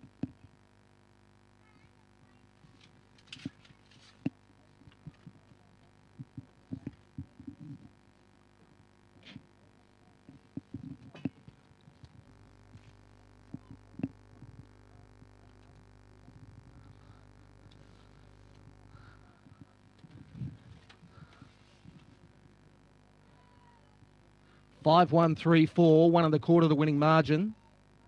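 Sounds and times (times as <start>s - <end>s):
faint steady hum: 0.0s - 28.0s.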